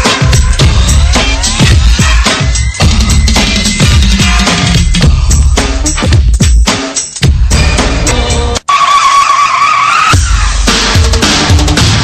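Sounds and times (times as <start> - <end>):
music with heavy bass beat: 0.0 - 8.6, 10.1 - 12.0
radio squealing screech: 8.7 - 10.6.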